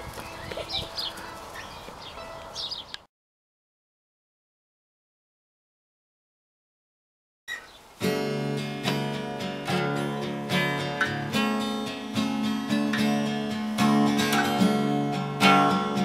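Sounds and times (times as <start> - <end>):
acoustic guitar chords: 8.0 - 16.0.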